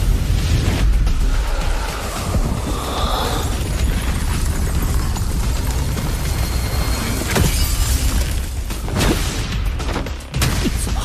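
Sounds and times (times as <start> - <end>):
heavy low rumble: 0.0 - 7.3
ice cracking and shattering: 3.0 - 9.4.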